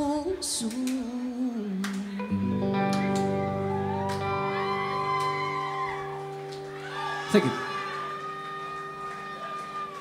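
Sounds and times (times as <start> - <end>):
person singing: 0.0 - 2.8.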